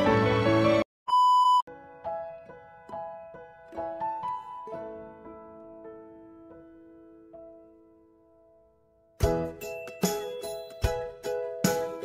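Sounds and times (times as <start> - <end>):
test-tone beep: 1.1 - 1.6
slow piano melody: 1.7 - 12.0.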